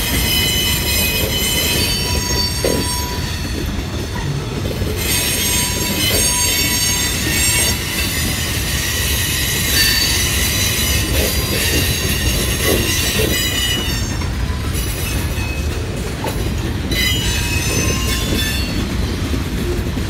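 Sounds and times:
shrill steel wheel squeal: 0.0s - 15.8s, 16.8s - 19.3s
train wheels rumbling on rail: 0.0s - 20.0s.

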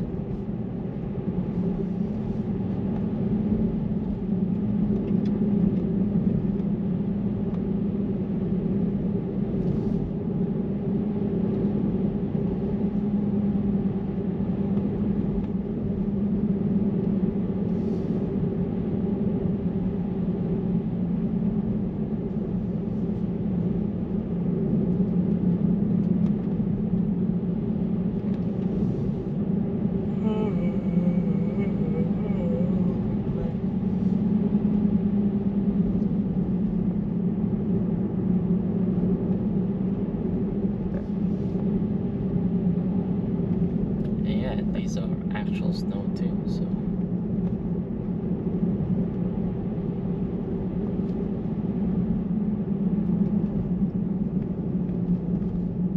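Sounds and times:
car road and tyre noise: 0.0s - 55.9s.

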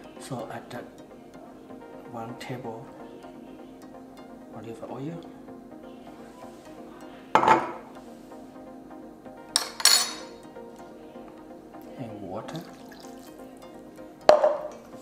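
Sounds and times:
soft background music: 0.0s - 15.0s
utensils clinking on steel bowl: 9.6s - 10.3s.

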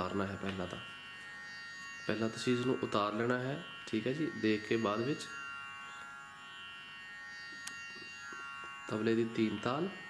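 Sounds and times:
harmonium drone: 0.0s - 10.0s.

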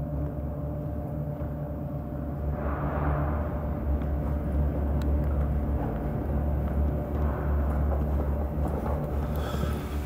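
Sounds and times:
low rumbling drone: 0.0s - 10.0s.

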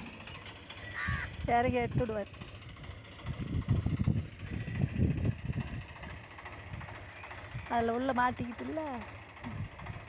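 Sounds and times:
tractor engine running: 0.0s - 10.0s.

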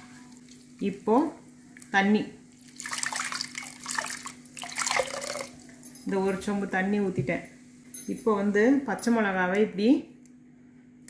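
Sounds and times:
water splashing into a pot: 2.6s - 5.6s
hand squeezing wet mixture: 2.6s - 5.8s.

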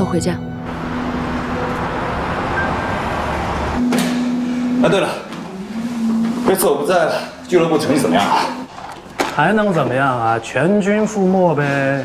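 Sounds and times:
car driving at highway speed: 0.7s - 5.5s
held low tone: 1.3s - 8.2s.

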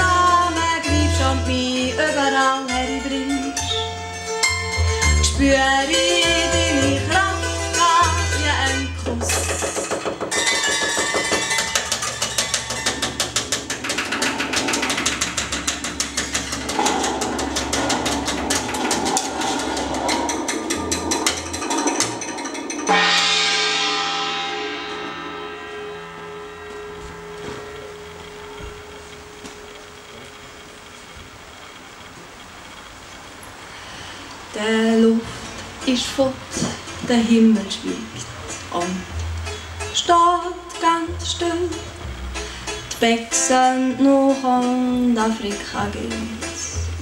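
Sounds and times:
hammered dulcimer tremolo: 0.0s - 32.0s, 34.6s - 47.0s
double bass notes: 0.0s - 32.7s, 34.4s - 47.0s.

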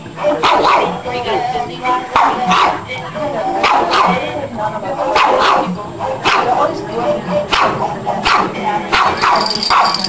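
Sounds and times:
puppy barking: 0.2s - 0.9s, 2.2s - 2.8s, 3.6s - 4.2s, 5.2s - 6.6s, 7.5s - 10.0s
steady high tone: 9.2s - 10.0s.

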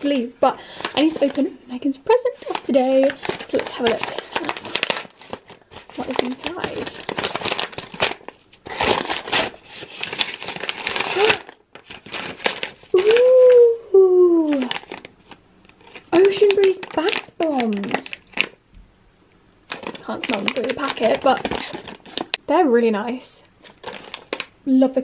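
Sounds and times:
wrapping paper crinkling and tearing: 0.0s - 18.6s, 19.7s - 22.4s, 23.1s - 24.6s.

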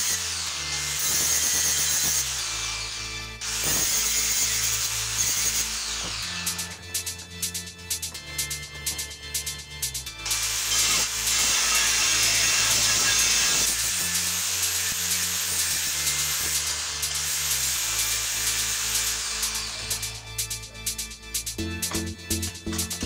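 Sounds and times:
angle grinder grinding steel: 0.0s - 21.0s
background music with steady beat: 0.0s - 23.0s.

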